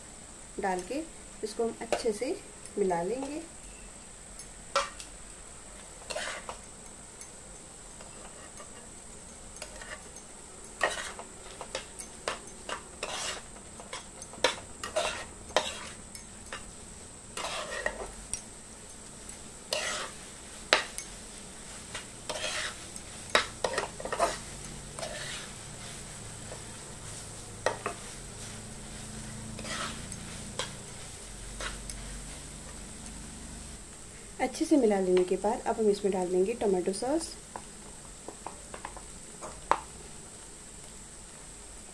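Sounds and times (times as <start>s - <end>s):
steel spoon scraping a pan: 1.8s - 5.1s, 5.7s - 18.5s, 19.2s - 32.8s.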